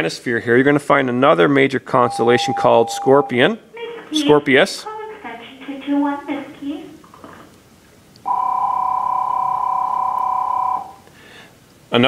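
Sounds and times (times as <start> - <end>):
two-tone electronic beep: 2.1 - 3.4.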